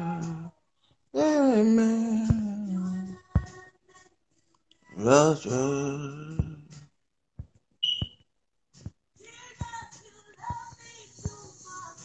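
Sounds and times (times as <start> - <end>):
man singing: 0.0 - 0.5, 1.2 - 3.6, 4.9 - 6.9
short high beep: 7.8 - 8.2.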